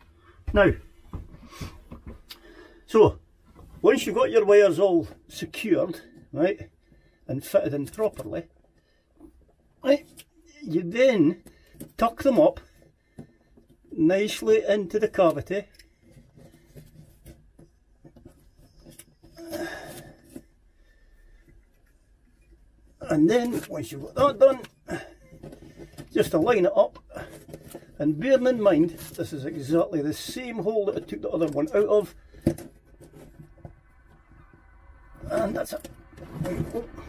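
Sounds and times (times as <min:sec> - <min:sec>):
wires rustling and rubbing: 0:07.5 - 0:37.0.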